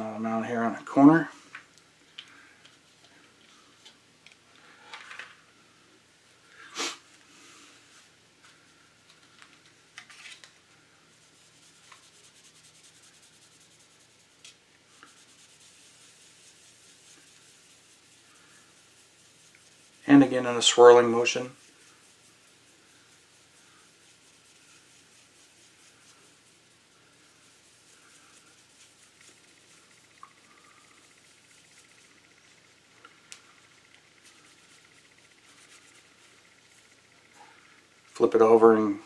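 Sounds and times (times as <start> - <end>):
cloth rubbing on plastic: 11.1 - 38.3.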